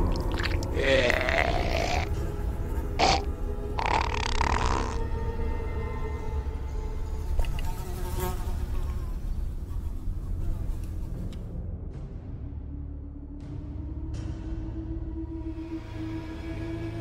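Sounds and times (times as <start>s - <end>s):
low ambient drone: 0.0s - 17.0s
raspy zombie hiss: 0.6s - 2.1s.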